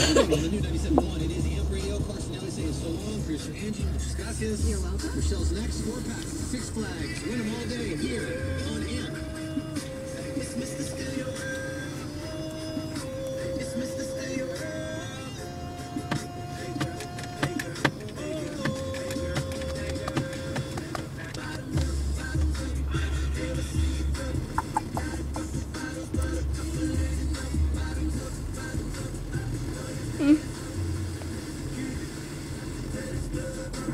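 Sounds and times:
heavy bass beat: 0.0s - 7.1s, 21.6s - 31.8s
music over car stereo: 0.0s - 33.9s.

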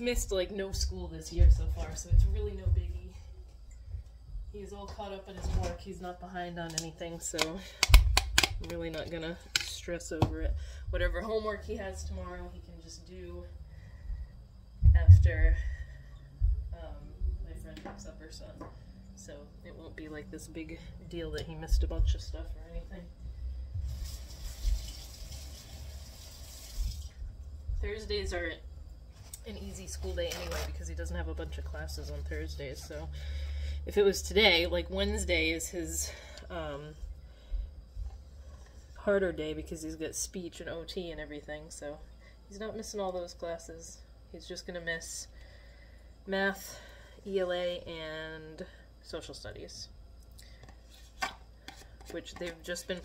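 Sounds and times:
water running from a tap: 23.8s - 27.2s.

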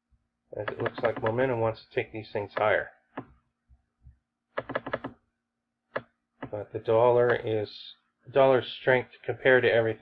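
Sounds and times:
mouse scroll wheel clicks: 0.6s - 1.4s, 4.6s - 5.2s.

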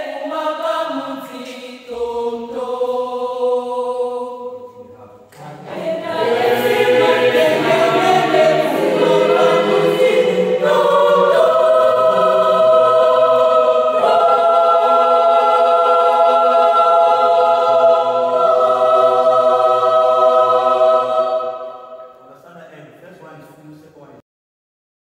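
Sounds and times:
choir singing a cappella: 0.0s - 22.4s.

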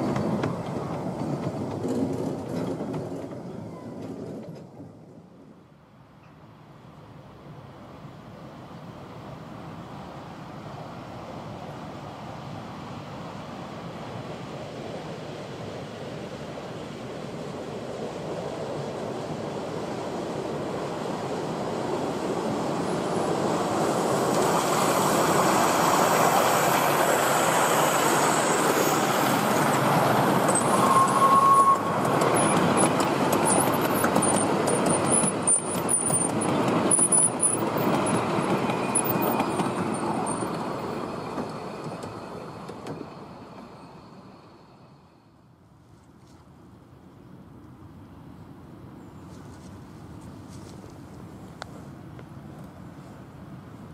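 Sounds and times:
steam locomotive passing: 0.0s - 45.6s.

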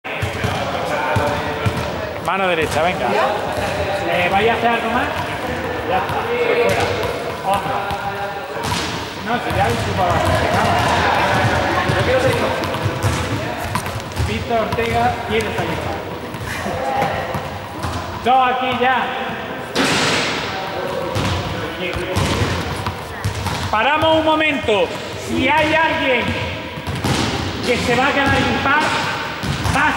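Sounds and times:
distant echoing voices: 0.1s - 29.9s
ball bouncing on floor: 5.1s - 18.1s, 21.1s - 29.9s.

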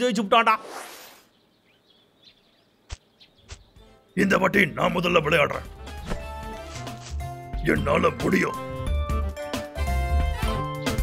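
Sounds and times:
faint bird chirping: 0.0s - 5.1s.

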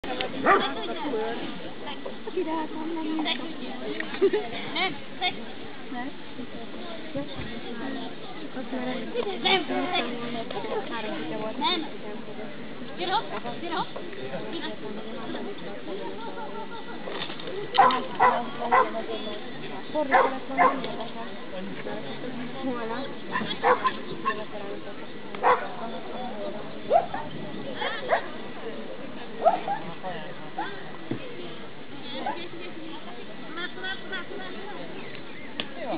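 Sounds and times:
murmur of voices: 0.0s - 35.9s
dog barking: 0.4s - 0.7s, 17.8s - 19.0s, 20.1s - 20.8s, 23.6s - 23.9s, 25.4s - 25.7s.

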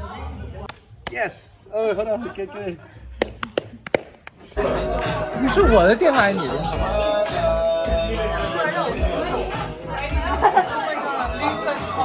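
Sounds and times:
people chattering: 0.0s - 12.0s
music playing: 4.4s - 12.0s.

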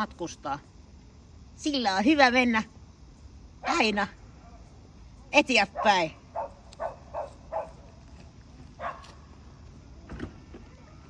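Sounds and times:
faint voice-like sounds: 10.0s - 11.0s.

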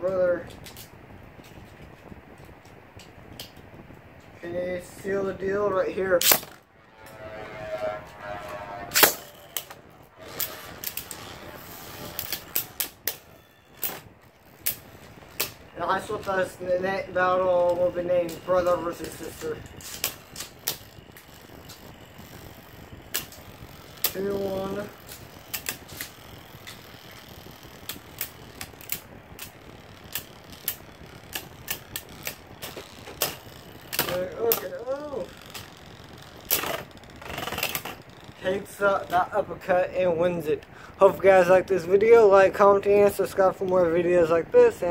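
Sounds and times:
spinning top whirring: 0.1s - 44.9s
spinning tops clacking together: 8.9s - 16.6s, 17.6s - 39.2s.

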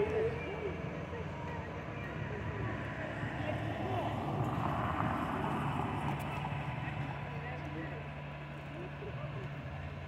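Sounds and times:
car passing close by: 2.4s - 8.3s.

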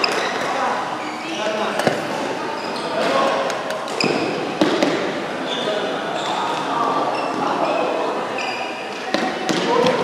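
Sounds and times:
sneakers squeaking: 0.0s - 10.0s
voices in echoing hall: 0.0s - 10.0s.

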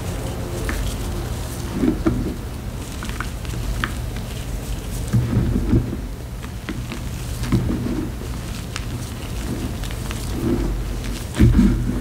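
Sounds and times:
hands crumbling chalk: 0.0s - 12.0s.

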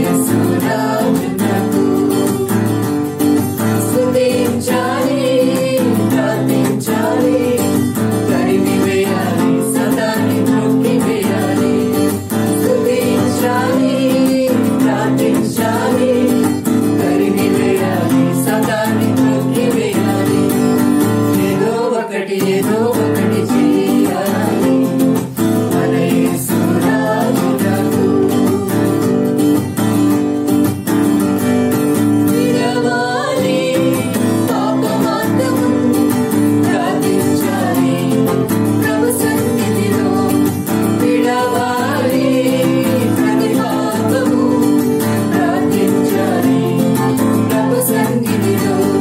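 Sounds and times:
person singing: 0.0s - 29.5s, 32.2s - 49.0s
acoustic guitar strumming: 0.0s - 49.0s.

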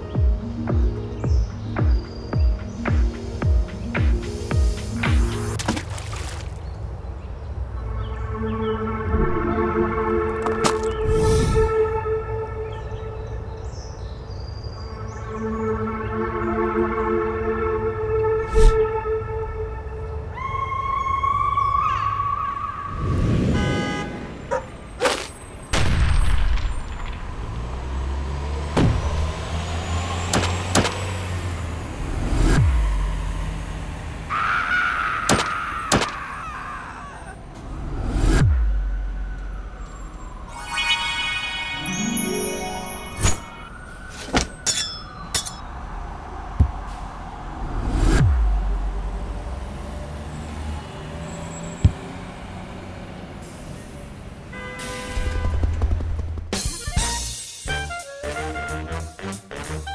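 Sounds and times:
sharp cracks: 35.2s - 36.3s
music with brass: 56.8s - 59.9s.

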